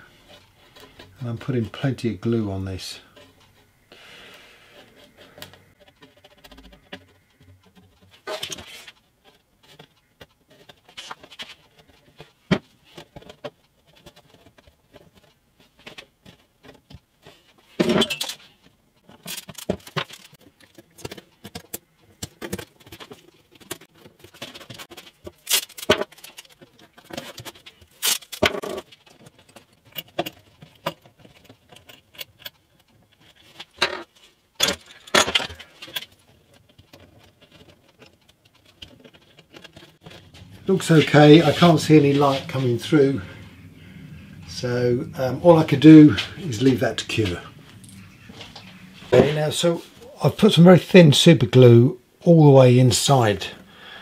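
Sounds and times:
masking tape ripping: 25.4 - 25.9, 28.0 - 28.4.

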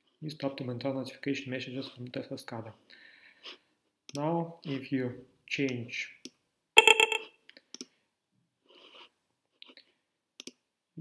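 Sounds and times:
faint mouse clicks: 4.1 - 4.3, 7.5 - 8.0, 10.4 - 10.6
computer alert tone: 6.8 - 7.3.

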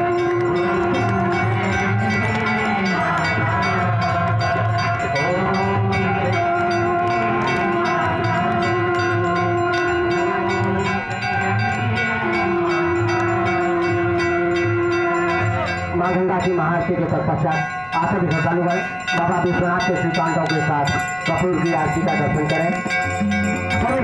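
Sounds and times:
amplified devotional music: 0.0 - 24.0
hand bells ringing rapidly: 0.0 - 24.0.

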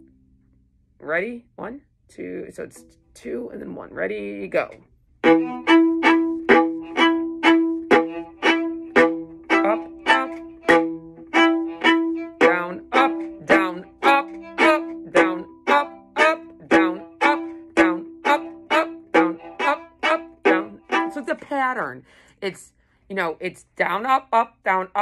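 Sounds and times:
viola short bow strokes: 5.2 - 21.4.

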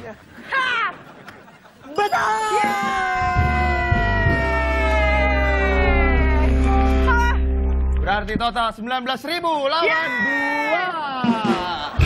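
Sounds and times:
person screaming with delight: 2.2 - 6.9
music with deep bass: 3.4 - 8.6.

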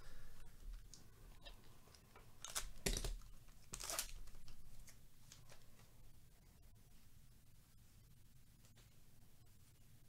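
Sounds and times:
wrapper tearing and crinkling: 2.4 - 5.0.

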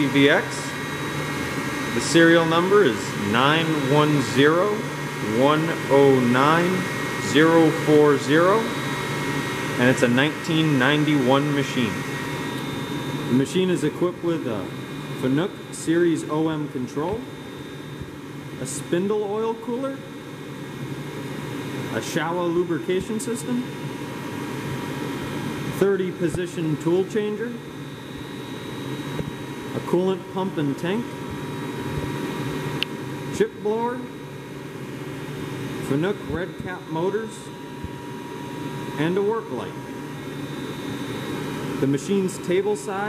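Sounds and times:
man's voice: 0.0 - 0.8, 2.0 - 8.8, 9.8 - 12.0, 35.9 - 37.5, 41.8 - 43.0
faint high whine: 0.0 - 43.0
low mechanical hum: 0.0 - 43.0.

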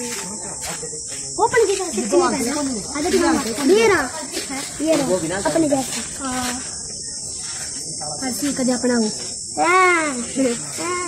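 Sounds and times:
high-pitched hiss: 0.0 - 11.0
people talking: 0.0 - 11.0.

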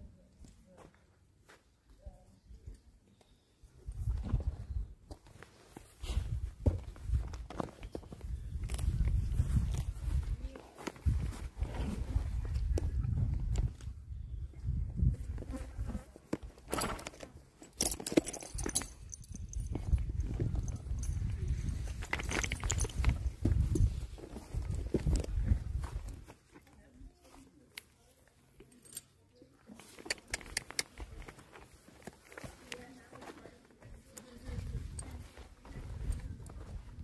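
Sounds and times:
footsteps on grass: 8.1 - 12.3
rustles and clicks: 15.2 - 27.9.

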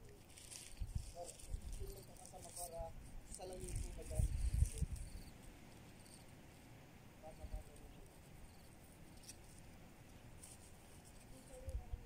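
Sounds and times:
faint outdoor ambience: 0.0 - 12.0.

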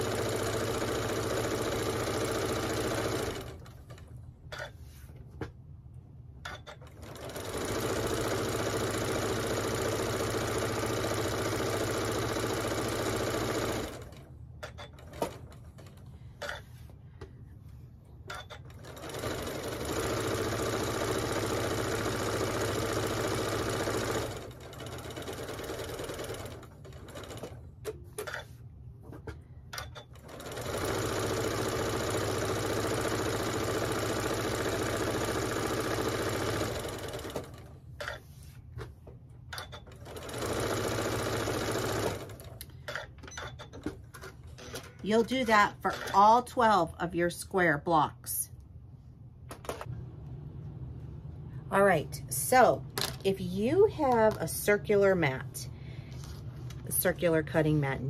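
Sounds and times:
sewing machine stitching: 0.0 - 4.7, 6.4 - 16.6, 18.3 - 28.4, 29.8 - 38.2, 39.5 - 44.0.

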